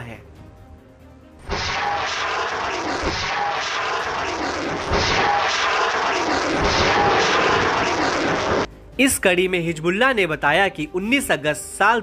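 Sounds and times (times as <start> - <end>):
loud roaring rush: 1.5 - 8.7.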